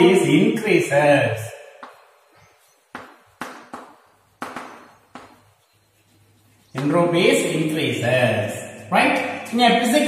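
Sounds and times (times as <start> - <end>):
chalk tapping and scratching on chalkboard: 1.8 - 7.8.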